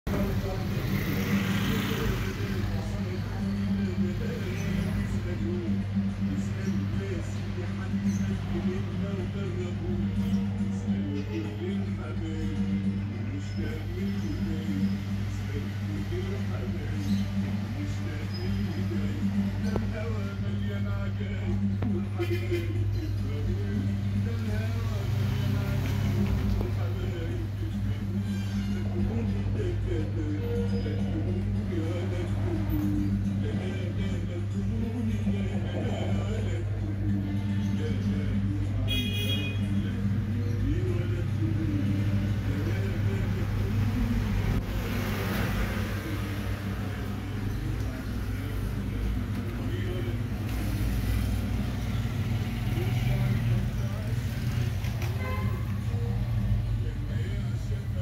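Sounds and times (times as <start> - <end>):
faint muffled voices: 0.0 - 58.0.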